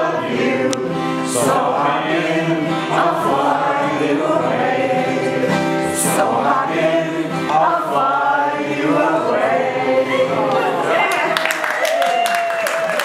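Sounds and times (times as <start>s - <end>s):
group singing: 0.0s - 11.4s.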